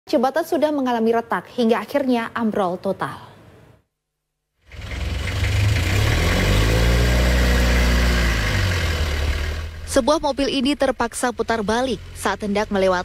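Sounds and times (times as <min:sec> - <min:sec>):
car engine running: 0:04.7 - 0:13.0.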